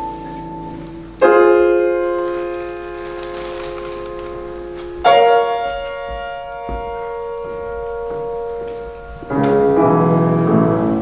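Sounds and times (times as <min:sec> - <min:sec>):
piano chords ringing: 0:00.0 - 0:11.0.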